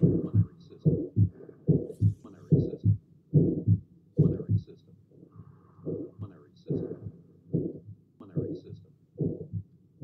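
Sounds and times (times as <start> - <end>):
heart murmur: 0.0 - 4.7, 5.8 - 9.7
heartbeat through stethoscope: 0.0 - 4.7, 5.8 - 9.7.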